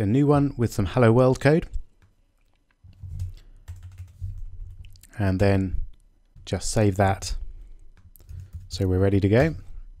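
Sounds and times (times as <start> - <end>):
computer keyboard typing: 2.9 - 4.9, 7.9 - 9.4.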